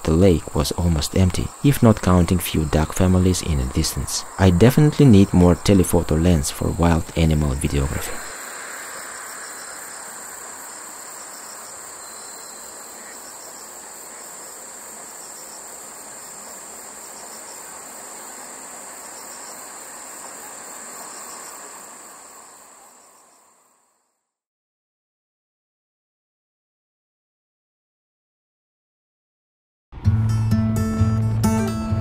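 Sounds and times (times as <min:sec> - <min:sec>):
soft background hiss: 0:00.0 - 0:24.1
crickets trilling: 0:00.0 - 0:24.2.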